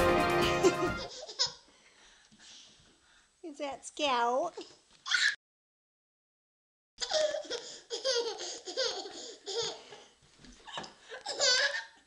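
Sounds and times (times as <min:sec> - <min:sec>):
baby laughing: 0:00.4 - 0:01.6, 0:07.0 - 0:10.0, 0:10.7 - 0:12.0.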